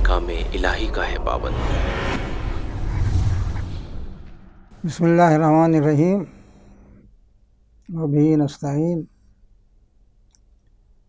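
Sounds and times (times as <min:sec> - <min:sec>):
deep boom with whoosh: 0:00.3 - 0:05.3
man speaking: 0:04.8 - 0:06.4.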